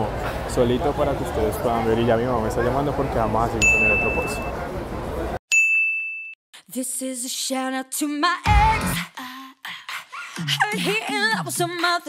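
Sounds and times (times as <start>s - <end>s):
high ding: 3.6s - 4.5s, 5.5s - 6.4s
background music with singing: 6.7s - 12.0s.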